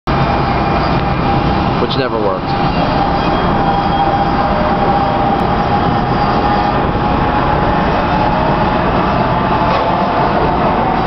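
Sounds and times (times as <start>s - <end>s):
train wheels and motors rumbling: 0.1s - 11.0s.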